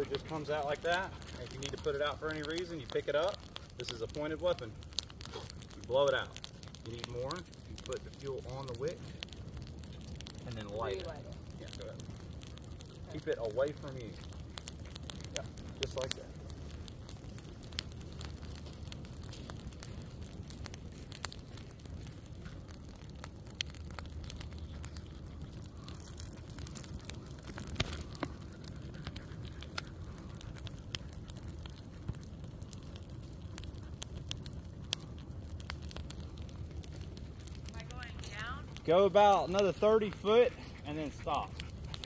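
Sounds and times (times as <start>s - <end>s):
low fire rumble: 0.0s - 42.0s
pine litter fire crackling: 0.0s - 42.0s.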